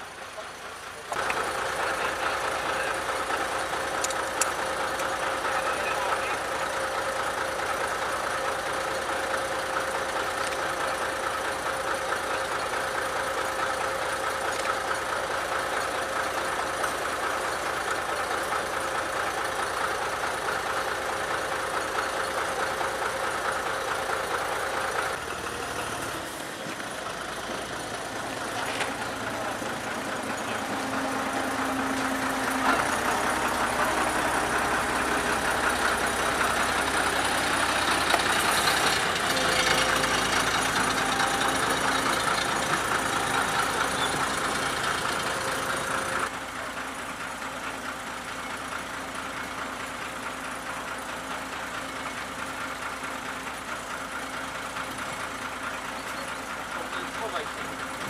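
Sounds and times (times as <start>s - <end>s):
diesel locomotive engine idling: 0.0s - 58.0s.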